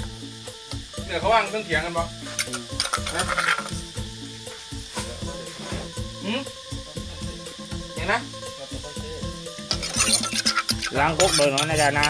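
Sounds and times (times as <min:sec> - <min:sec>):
background music: 0:00.0 - 0:12.0
metal ladle scraping clay mortar: 0:02.2 - 0:03.8, 0:09.6 - 0:12.0
ladle clinking on metal pot: 0:02.4 - 0:03.6, 0:09.7 - 0:12.0.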